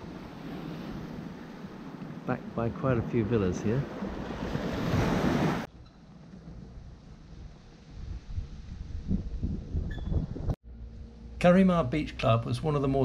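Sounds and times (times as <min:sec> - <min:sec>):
small waves washing onto sand: 0:00.0 - 0:02.6, 0:03.4 - 0:05.7
low wind rumble: 0:00.0 - 0:13.0
wind on microphone: 0:06.8 - 0:10.6.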